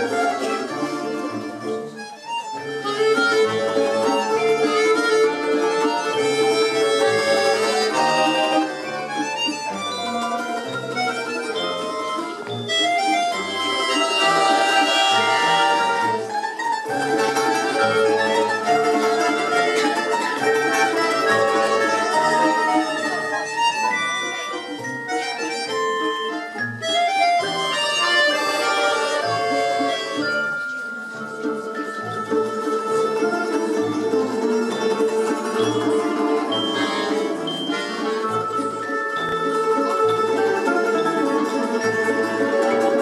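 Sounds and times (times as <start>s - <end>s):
folk instrument orchestra playing: 0.0s - 43.0s.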